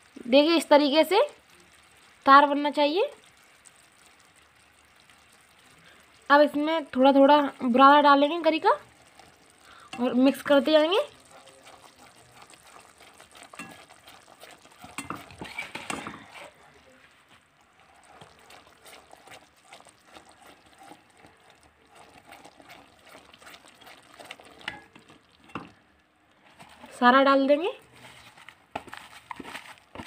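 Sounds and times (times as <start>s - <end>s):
spatula scraping while stirring: 9.0s - 25.8s, 26.4s - 27.0s, 27.8s - 30.0s.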